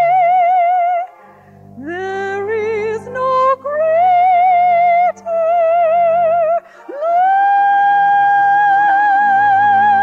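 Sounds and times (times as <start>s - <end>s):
low sustained accompaniment: 0.0s - 10.0s
woman singing classical high note: 1.8s - 10.0s.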